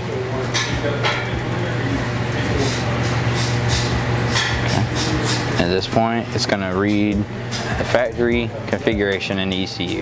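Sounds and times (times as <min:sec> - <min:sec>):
low machine hum with rushing: 0:00.0 - 0:10.0.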